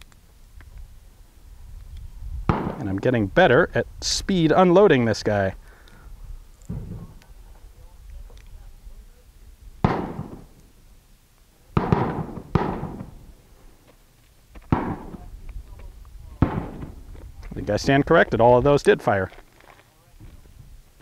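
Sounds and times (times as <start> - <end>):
gunshots with echo: 2.5 - 2.8, 9.8 - 10.5, 11.8 - 13.2, 14.7 - 15.3, 16.4 - 16.9.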